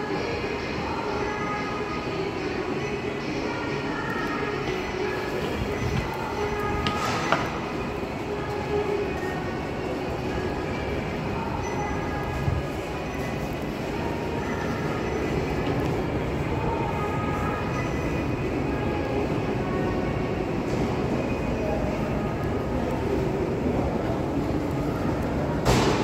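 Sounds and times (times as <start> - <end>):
murmur of many voices: 0.0 - 26.0.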